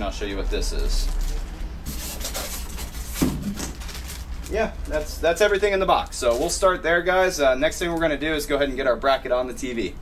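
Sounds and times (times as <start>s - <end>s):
plastic bag crinkling: 0.4s - 6.7s.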